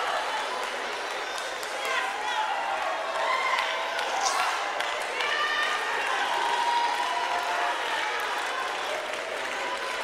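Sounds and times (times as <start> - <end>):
congregation applauding: 0.0 - 10.0.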